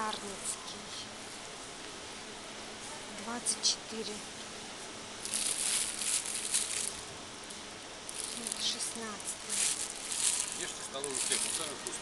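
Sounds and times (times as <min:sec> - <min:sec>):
rustling and handling noise: 0:05.2 - 0:07.2, 0:08.1 - 0:12.0.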